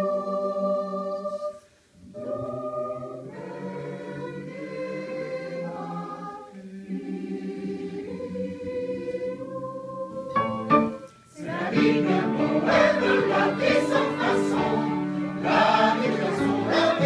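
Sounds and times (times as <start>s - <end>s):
mixed choir singing: 0.0s - 17.0s.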